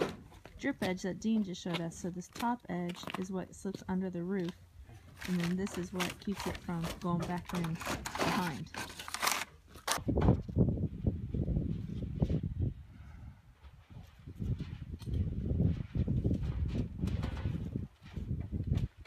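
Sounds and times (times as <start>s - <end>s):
wind buffeting microphone: 10.0s - 19.0s.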